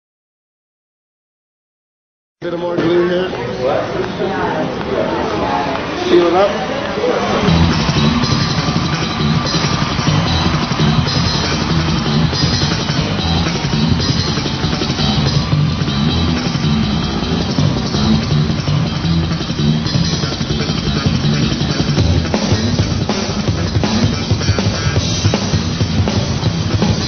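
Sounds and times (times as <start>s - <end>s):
guitar: 2.4s - 27.0s
electric bass line: 7.3s - 27.0s
drum kit: 7.4s - 27.0s.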